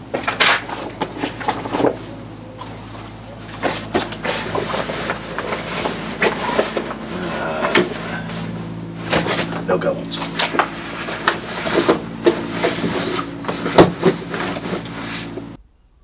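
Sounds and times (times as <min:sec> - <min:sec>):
steady low hum: 0:00.0 - 0:16.0
fabric bag rustling and scraping: 0:00.7 - 0:15.6.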